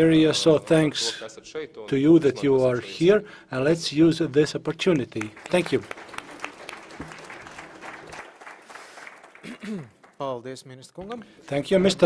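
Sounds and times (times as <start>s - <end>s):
audience applauding: 5.0s - 10.2s.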